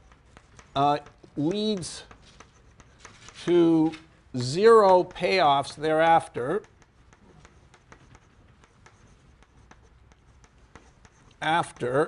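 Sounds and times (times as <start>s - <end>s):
chalk tapping and scraping on blackboard: 0.0s - 12.0s.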